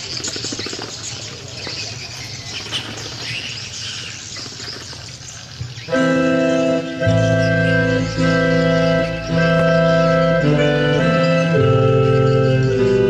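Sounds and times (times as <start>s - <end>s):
birds chirping: 0.0s - 13.0s
outdoor crowd ambience: 0.0s - 13.0s
wind ensemble holding long notes: 5.9s - 13.0s.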